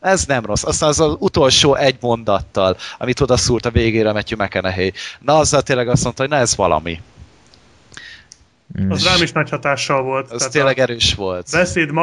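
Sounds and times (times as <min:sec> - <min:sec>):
man speaking: 0:00.0 - 0:07.2, 0:08.0 - 0:08.3, 0:08.9 - 0:12.0
faint hiss: 0:00.0 - 0:12.0
soft clicks: 0:07.4 - 0:08.5.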